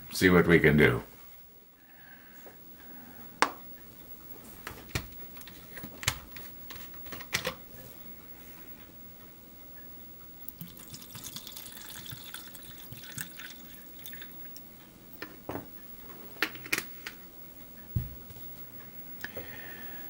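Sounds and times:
liquid trickling into plastic cup: 0:10.6 - 0:14.4.

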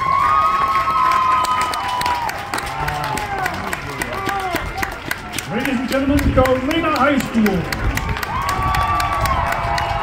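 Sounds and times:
crowd clapping: 0:00.0 - 0:10.0
man's voice: 0:05.5 - 0:07.7.

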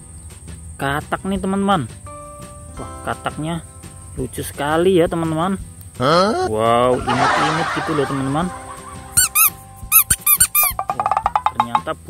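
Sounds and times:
rubber squeaky toy squeaking: 0:09.2 - 0:11.8.

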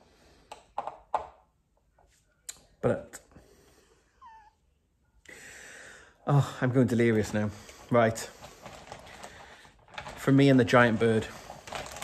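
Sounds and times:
high squeaky vocal whimper: 0:04.2 - 0:04.6.

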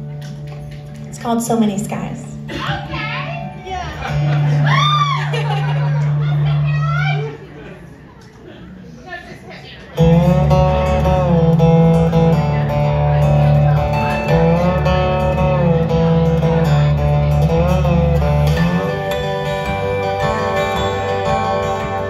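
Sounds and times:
slide guitar gliding notes: 0:03.2 - 0:07.4, 0:10.0 - 0:22.0
low bass: 0:10.0 - 0:22.0.

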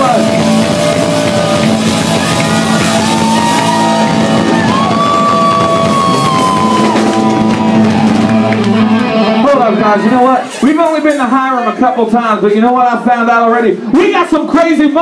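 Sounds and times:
electric guitar bending notes: 0:00.0 - 0:10.1
rock band playing loud: 0:00.0 - 0:11.3.

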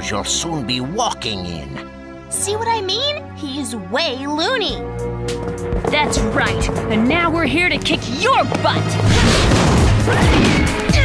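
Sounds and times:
driving action music: 0:00.1 - 0:11.0
loud crash: 0:09.0 - 0:10.7.

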